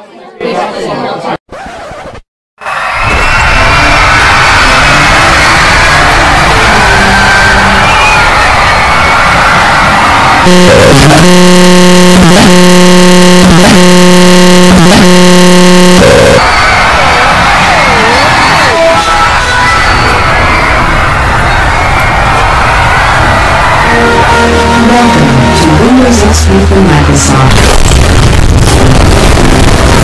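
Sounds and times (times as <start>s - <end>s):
distorted jumble of audio clips: 9.4s - 23.2s, 24.4s - 30.0s
loud buzzing tone: 10.4s - 16.4s.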